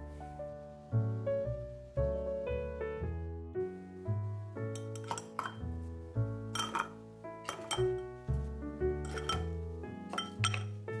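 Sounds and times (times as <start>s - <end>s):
gentle piano music: 0.0s - 11.0s
ice cubes clinking in a glass: 4.8s - 5.6s, 6.6s - 8.0s, 9.1s - 9.5s, 10.1s - 10.8s.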